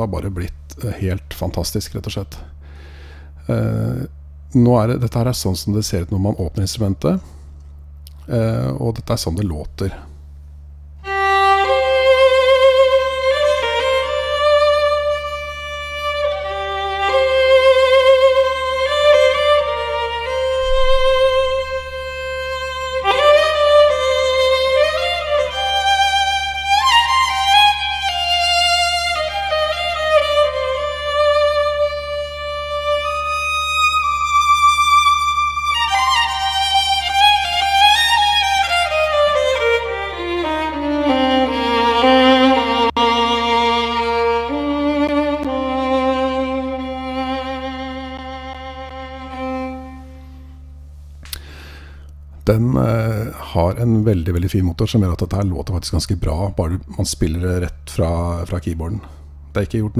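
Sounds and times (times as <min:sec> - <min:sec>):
solo violin melody: 0:11.0 - 0:50.8.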